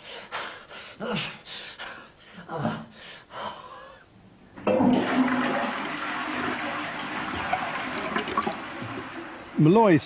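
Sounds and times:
toilet flushing: 4.6 - 9.7.

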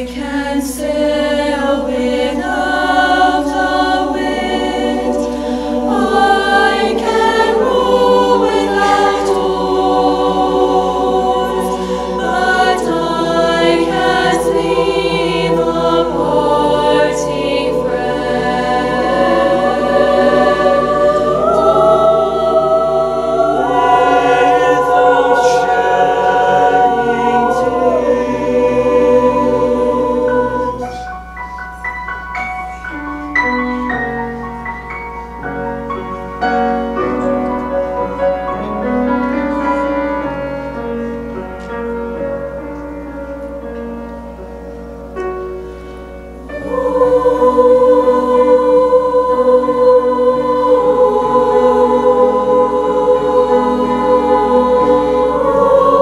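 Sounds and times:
choir singing folk song: 0.0 - 31.4, 45.0 - 56.0.

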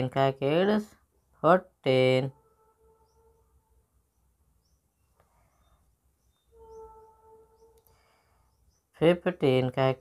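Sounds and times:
faint steady hum: 0.1 - 9.9
faint high chirps: 2.3 - 9.0.

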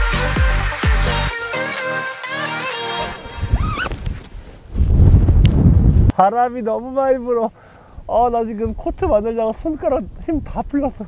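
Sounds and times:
wind buffeting microphone: 3.4 - 6.2, 8.0 - 11.0.

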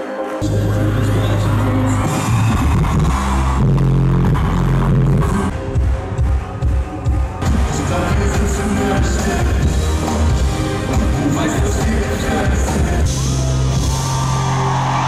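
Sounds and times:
loud live concert music: 0.0 - 15.0
pulsing heavy bass: 0.4 - 15.0.

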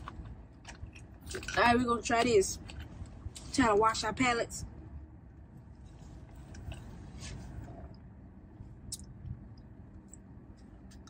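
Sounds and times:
car air conditioning hum: 0.0 - 11.0.

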